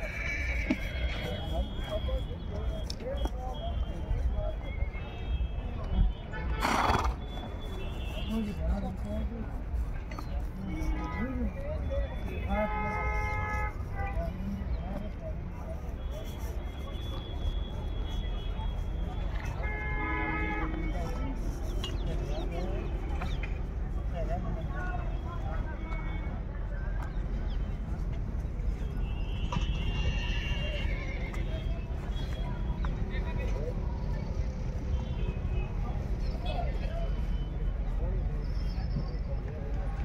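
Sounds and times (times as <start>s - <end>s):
voices: 0.0s - 40.0s.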